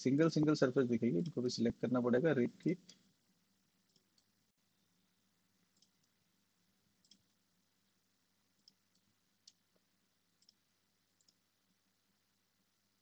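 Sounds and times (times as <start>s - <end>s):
faint low hum: 0.0s - 13.0s
faint computer mouse clicks: 3.9s - 4.3s, 5.7s - 6.2s, 7.0s - 7.4s, 8.6s - 9.7s, 10.4s - 10.6s, 11.2s - 11.4s.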